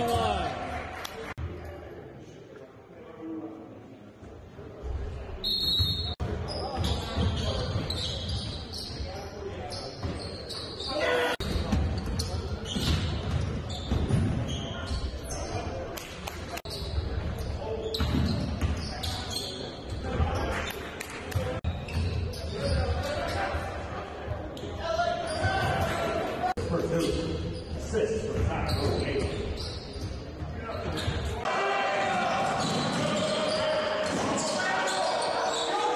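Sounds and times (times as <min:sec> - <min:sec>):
sneakers squeaking on court: 0:05.4 - 0:15.9, 0:16.6 - 0:20.6, 0:21.6 - 0:23.6, 0:24.5 - 0:26.1, 0:26.9 - 0:31.4, 0:32.5 - 0:35.9
players calling out: 0:30.7 - 0:35.9.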